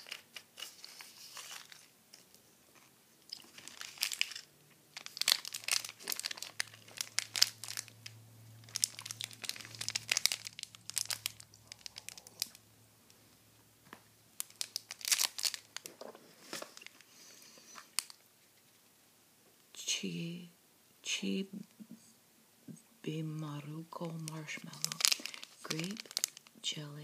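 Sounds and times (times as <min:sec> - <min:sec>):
plastic wrapper crinkling: 0:00.0 - 0:12.6, 0:14.4 - 0:18.2, 0:23.9 - 0:26.7.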